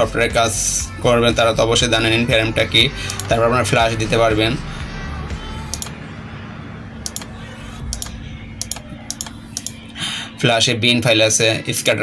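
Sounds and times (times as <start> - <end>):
faint steady hum: 0.0 - 12.0
computer mouse clicking: 5.7 - 6.0, 7.0 - 7.3, 7.9 - 9.8.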